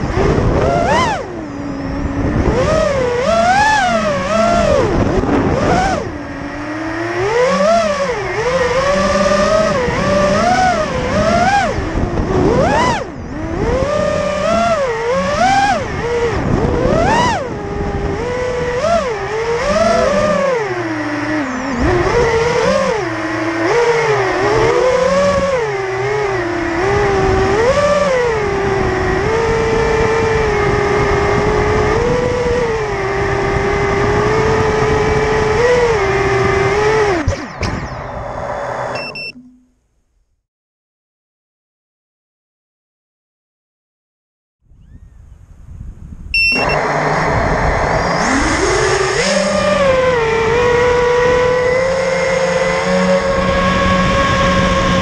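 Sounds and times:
quadcopter motors whining: 0:00.0 - 0:39.4, 0:44.8 - 0:45.2, 0:46.4 - 0:55.0.

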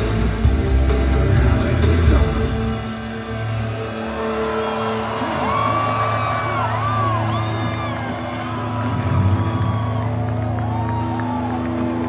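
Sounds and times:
rock band holding a chord: 0:00.0 - 0:07.1
crowd cheering and whooping: 0:03.2 - 0:12.0.

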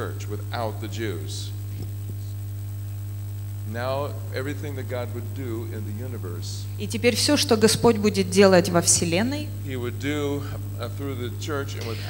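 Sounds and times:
person speaking: 0:00.0 - 0:02.4, 0:03.6 - 0:12.0
electrical mains hum: 0:00.0 - 0:12.0.

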